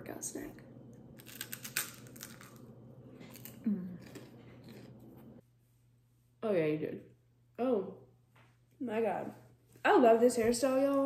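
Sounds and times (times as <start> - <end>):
rice cake crunching: 1.2 - 5.0.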